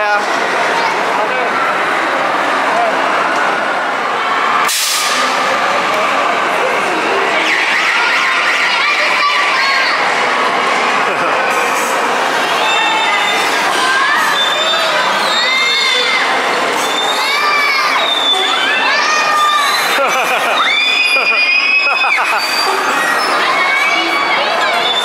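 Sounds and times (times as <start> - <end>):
crowd hubbub: 0.0 - 25.0
children screaming with excitement: 12.6 - 25.0.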